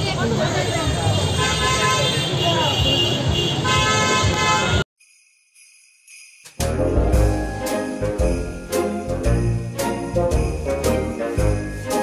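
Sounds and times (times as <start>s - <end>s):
vehicle horns honking: 1.1s - 4.8s.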